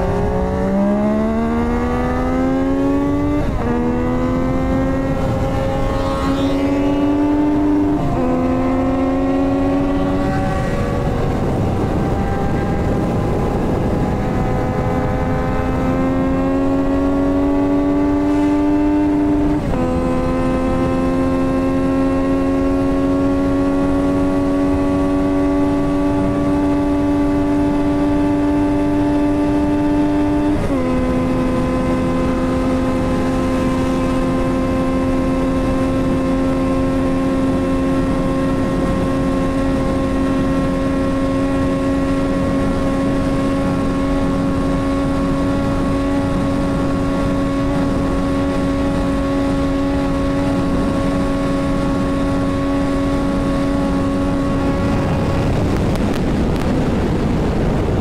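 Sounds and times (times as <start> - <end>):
motorcycle engine at full throttle: 0.0 - 58.0
wind rushing: 0.0 - 58.0.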